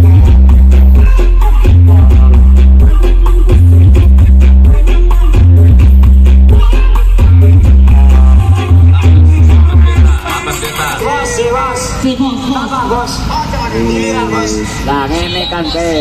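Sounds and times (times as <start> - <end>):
loud electronic dance music: 0.0 - 16.0.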